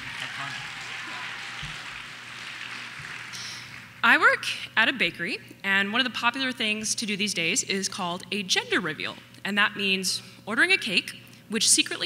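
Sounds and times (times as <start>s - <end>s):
audience applauding: 0.0s - 4.0s.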